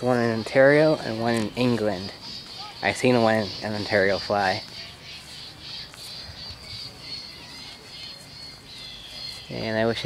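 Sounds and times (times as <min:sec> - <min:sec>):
birds chirping: 0:00.0 - 0:10.0
steady high hum: 0:00.0 - 0:10.0.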